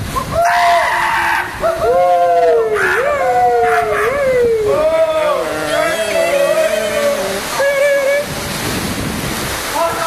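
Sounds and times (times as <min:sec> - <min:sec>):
young men yelling: 0:00.5 - 0:08.1.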